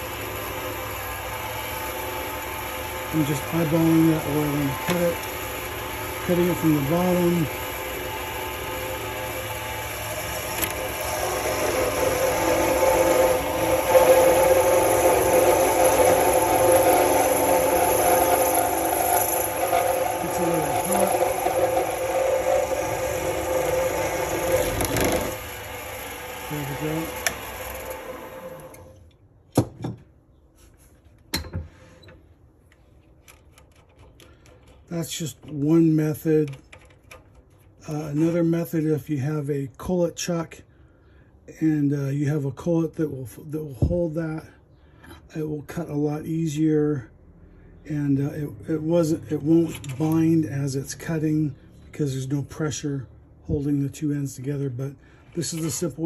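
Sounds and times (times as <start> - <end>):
blade cutting spinning brass tube: 0.0 - 28.8
lathe motor running: 0.0 - 29.0.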